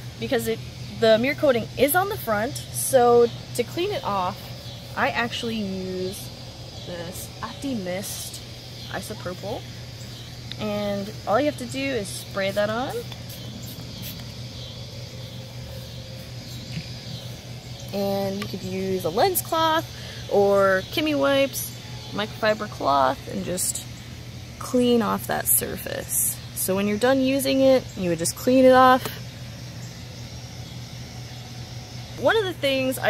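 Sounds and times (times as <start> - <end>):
low engine-like hum: 0.0 - 33.0
spray bottle hisses: 13.1 - 14.4.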